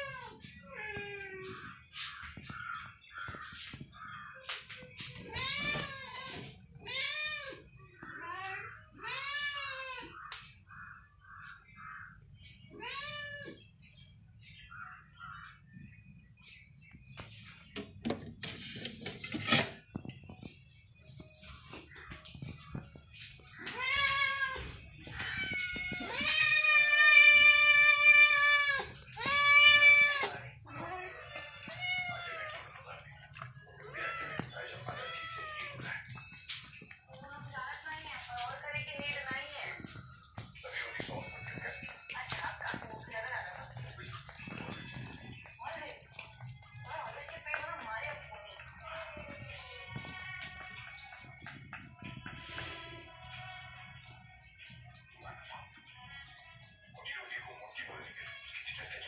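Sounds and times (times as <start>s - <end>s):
cats meowing: 0.0s - 3.5s, 5.1s - 10.4s, 11.4s - 13.7s, 23.4s - 36.9s.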